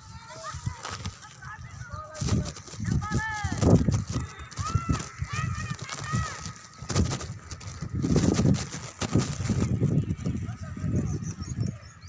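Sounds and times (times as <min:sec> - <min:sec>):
children's high-pitched calls: 0:00.0 - 0:07.8.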